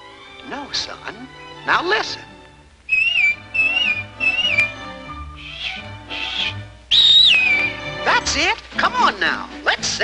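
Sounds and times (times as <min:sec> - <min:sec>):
soft orchestral music: 0:00.0 - 0:10.0
cartoon whistling: 0:02.9 - 0:08.0
breathy puffs of air: 0:05.3 - 0:06.7.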